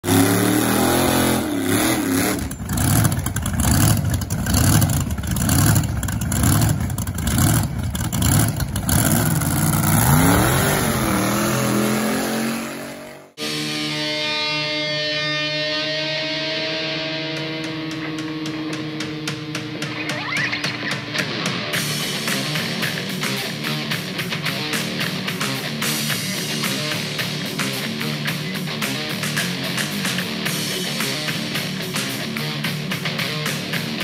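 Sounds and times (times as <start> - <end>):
drag racing engine revving: 0.0 - 13.4
electric guitar rock music: 9.3 - 34.0.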